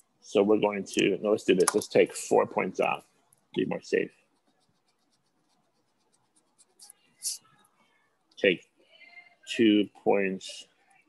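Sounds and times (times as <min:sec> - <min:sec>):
pen scratching on paper: 0:04.1 - 0:07.0.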